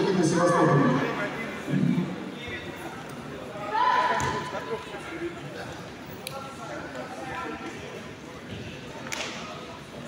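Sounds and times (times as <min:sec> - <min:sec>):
voices echoing in a hall: 0:00.0 - 0:10.0.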